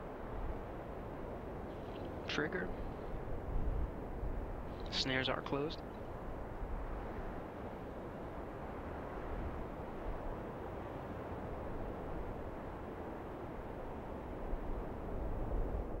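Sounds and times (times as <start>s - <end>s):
steady hiss and low rumble: 0.0s - 16.0s.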